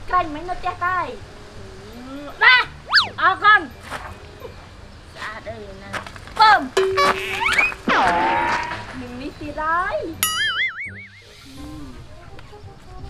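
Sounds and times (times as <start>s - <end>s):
whistle-like sweep: 2.8s - 3.2s, 10.4s - 11.8s
held tone: 2.9s - 3.2s, 10.2s - 11.4s
slide whistle rising: 2.9s - 3.2s, 10.5s - 11.4s
woman talking: 9.0s - 10.2s.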